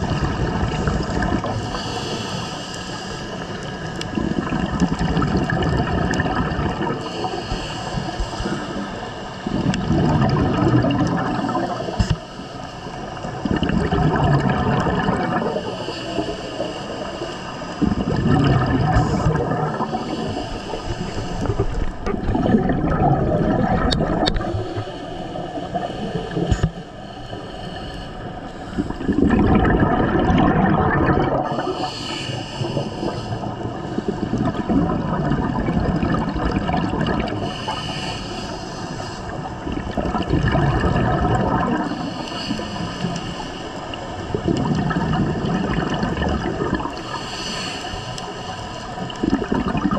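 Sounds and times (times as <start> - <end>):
underwater exhaled bubbles: 0.0 - 49.9
regulator hiss: 31.6 - 34.4.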